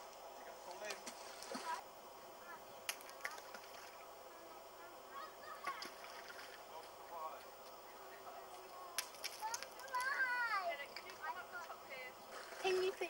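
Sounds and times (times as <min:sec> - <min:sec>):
low outdoor background: 0:00.0 - 0:13.0.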